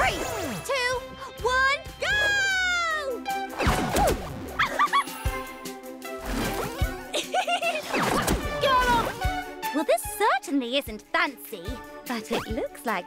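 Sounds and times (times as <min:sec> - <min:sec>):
upbeat cartoon music: 0:00.0 - 0:13.0.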